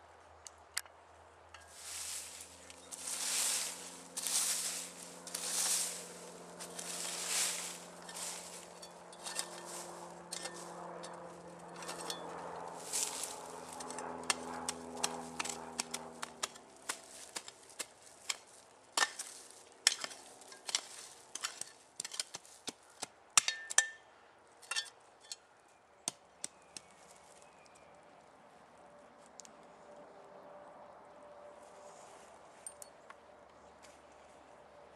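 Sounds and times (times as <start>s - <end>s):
low steady drone: 1.6s - 16.7s
shovel chopping and scraping soil: 1.6s - 24.0s.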